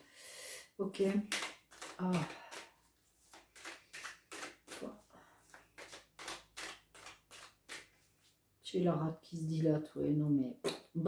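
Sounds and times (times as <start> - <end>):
cards being shuffled: 1.0 - 8.3.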